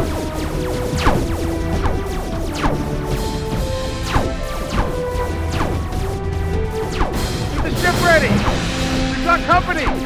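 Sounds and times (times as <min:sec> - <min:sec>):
laser blaster zaps: 0:00.0 - 0:06.1
dramatic music score: 0:00.0 - 0:10.0.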